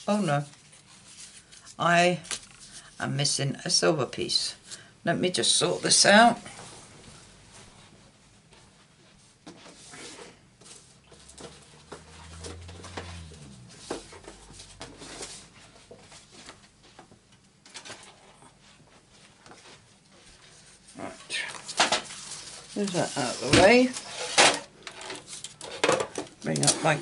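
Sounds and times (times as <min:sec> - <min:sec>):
rustling and tapping craft materials: 0:08.5 - 0:18.3
brief low hum: 0:11.0 - 0:15.8.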